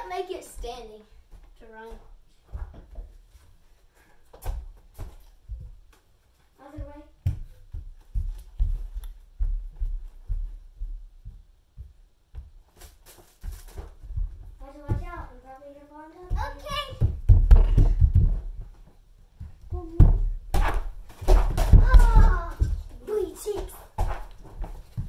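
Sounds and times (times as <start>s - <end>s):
children running on wooden floor: 6.8s - 12.6s, 16.2s - 25.0s.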